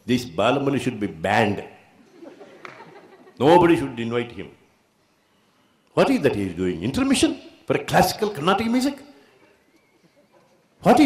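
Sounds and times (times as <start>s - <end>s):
man speaking: 0.0s - 1.9s, 3.4s - 4.6s, 6.0s - 9.2s.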